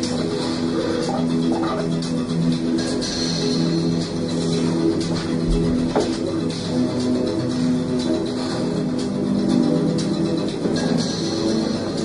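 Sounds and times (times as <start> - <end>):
instrumental film soundtrack music: 0.0 - 12.0.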